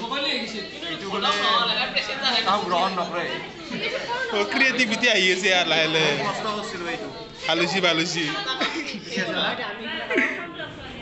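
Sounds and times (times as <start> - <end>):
several voices talking: 0.0 - 11.0.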